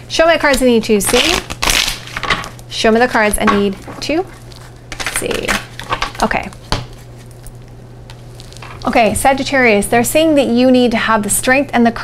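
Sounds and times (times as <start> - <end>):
woman speaking: 0.1 - 1.5, 2.7 - 4.4, 5.0 - 6.6, 8.8 - 12.0.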